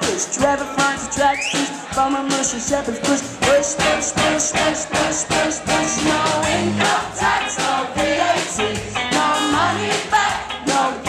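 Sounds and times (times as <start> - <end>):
upbeat dance music with singing: 0.0 - 11.0.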